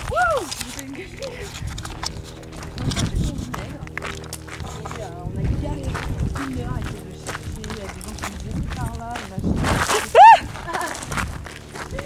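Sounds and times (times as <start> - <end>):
footsteps on stony dirt trail: 0.0 - 12.0.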